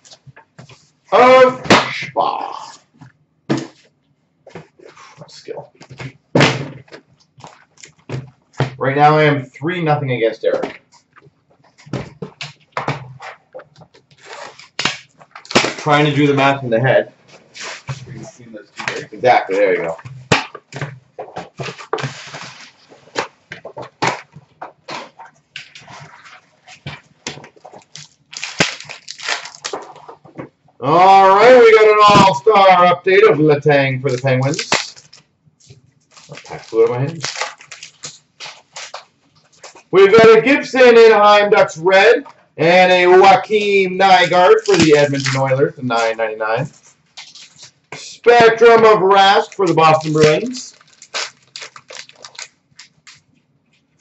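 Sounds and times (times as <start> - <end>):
foil packs crinkling: 12.4 - 16.6, 21.2 - 30.4, 34.0 - 40.0, 43.3 - 53.9.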